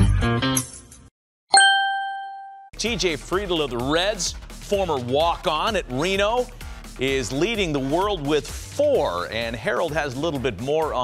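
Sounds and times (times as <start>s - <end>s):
bright chime ringing: 1.5s - 2.7s.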